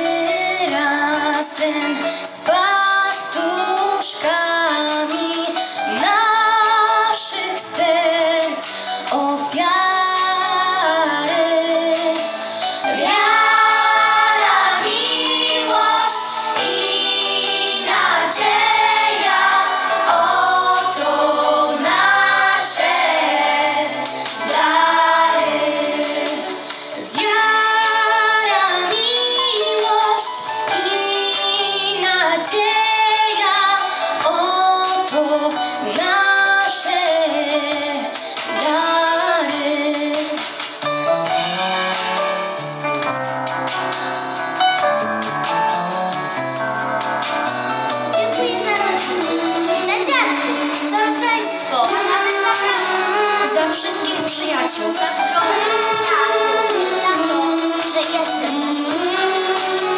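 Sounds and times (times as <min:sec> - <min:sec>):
children's choir singing a carol: 0:12.8 - 0:35.0, 0:48.4 - 0:59.9.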